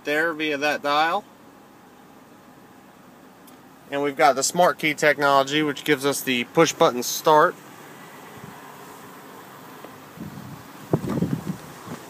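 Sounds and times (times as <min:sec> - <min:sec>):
faint steady hiss: 0:00.0 - 0:12.0
wind rumbling on microphone: 0:10.1 - 0:12.0.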